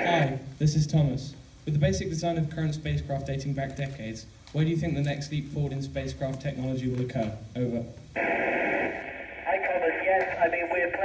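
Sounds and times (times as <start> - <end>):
radio static hiss: 0.0 - 1.9, 7.6 - 11.0
thin voice over radio: 9.3 - 11.0.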